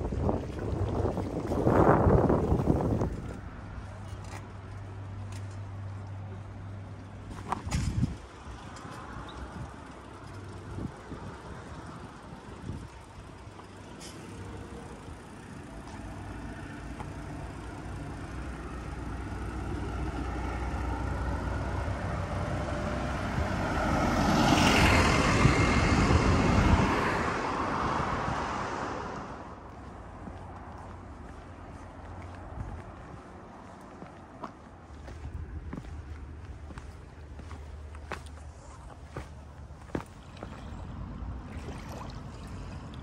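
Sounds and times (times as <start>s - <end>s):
vehicle passing through tunnel: 8.5s - 43.0s.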